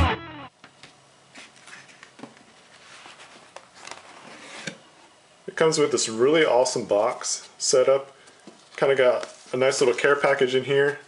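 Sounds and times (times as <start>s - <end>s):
electric guitar chord: 0.0s - 0.5s.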